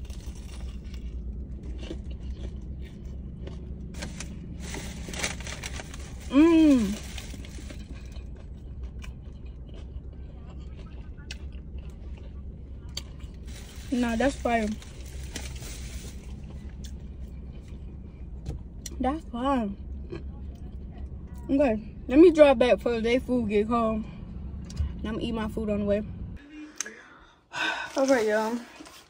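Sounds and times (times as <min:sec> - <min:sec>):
food wrapper rustling: 0:03.4 - 0:08.4, 0:13.2 - 0:17.0, 0:27.6 - 0:29.0.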